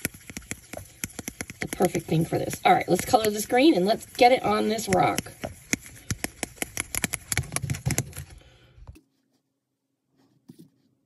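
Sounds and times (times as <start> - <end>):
stick clicking against plastic cup: 0.0 - 8.3.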